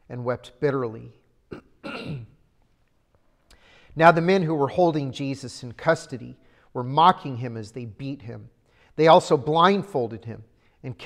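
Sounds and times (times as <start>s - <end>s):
man clearing his throat: 1.5s - 2.5s.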